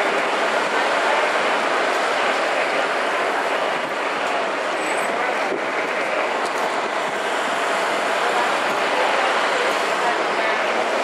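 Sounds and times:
traffic passing: 0.0 - 11.0.

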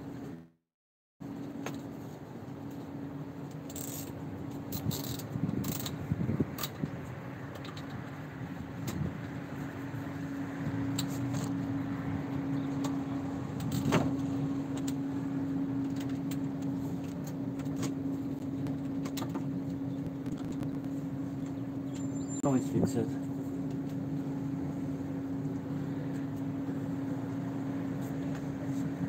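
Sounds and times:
road traffic: 0.0 - 0.6, 1.2 - 29.0
steady hum: 9.4 - 29.0.

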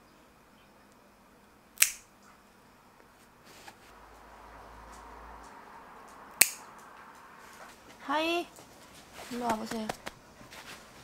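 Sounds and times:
nail clipper snipping: 1.8 - 2.1, 6.4 - 6.6.

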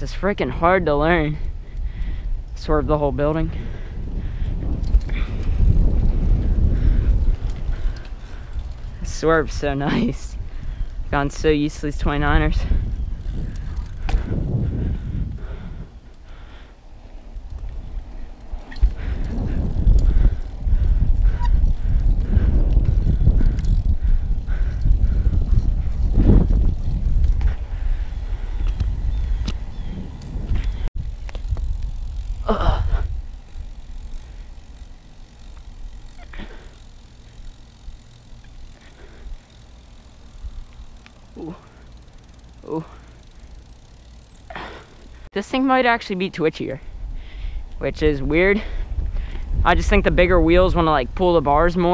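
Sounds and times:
wind rumbling on microphone: 0.0 - 45.3, 46.7 - 51.9
tyres rolling on asphalt: 3.5 - 47.8.

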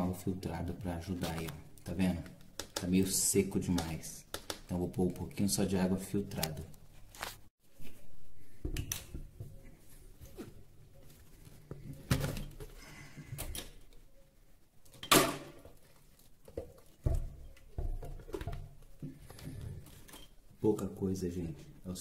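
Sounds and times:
plastic knocks and clunks: 16.5 - 19.8.

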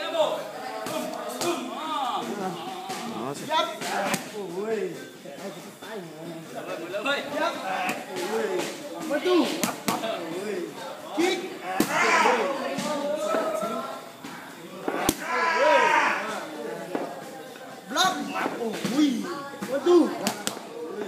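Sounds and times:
people's voices: 0.0 - 21.0.

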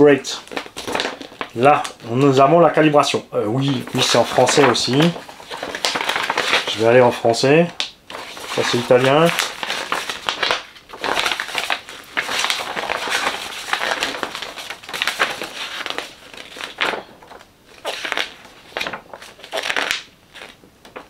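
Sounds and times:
paper pages rustling: 0.0 - 21.0.

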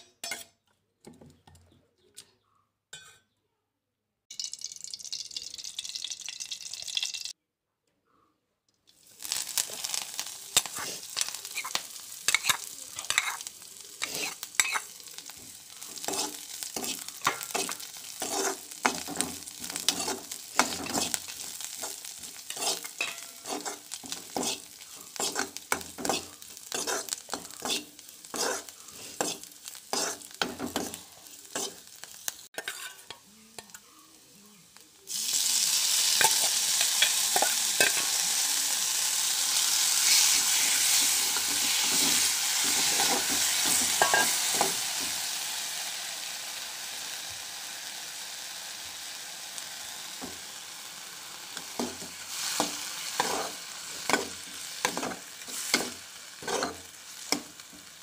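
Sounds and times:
spoon scraping metal pan: 0.0 - 0.6, 10.6 - 14.9, 15.8 - 32.0, 32.6 - 33.9, 40.0 - 45.1, 51.6 - 57.5
frying sizzle: 4.3 - 7.4, 8.9 - 58.0.

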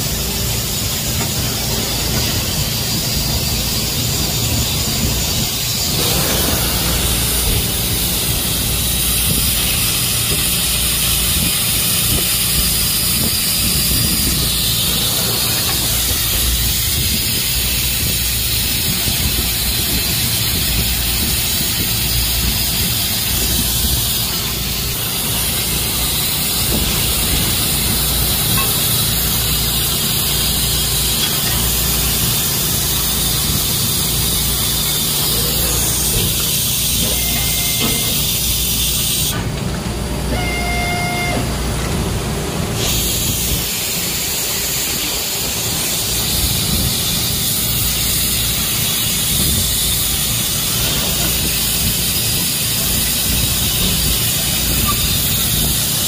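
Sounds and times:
low machine hum: 0.0 - 18.8
laser cutter hissing: 0.0 - 39.5, 42.6 - 56.0.

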